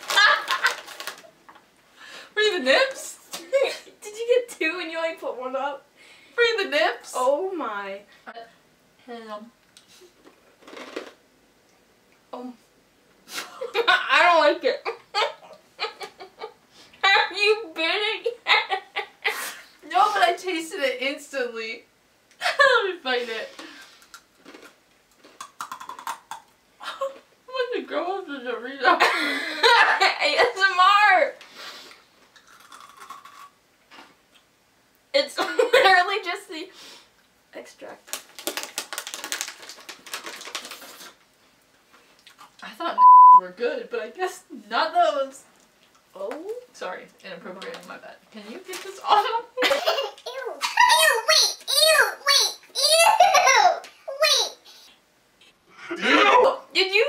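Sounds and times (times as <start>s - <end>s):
snack being crunched: 24.0s - 26.5s, 32.3s - 34.2s.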